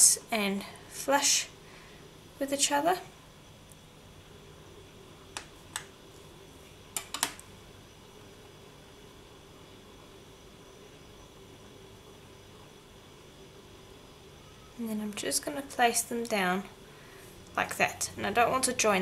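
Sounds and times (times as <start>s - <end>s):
faint room hum: 0.0s - 19.0s.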